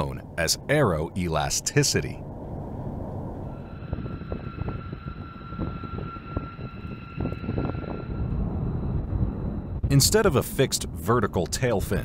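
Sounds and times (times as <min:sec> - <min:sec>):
high engine whine: 0:00.0 - 0:12.0
jet engines low rumble: 0:00.0 - 0:12.0.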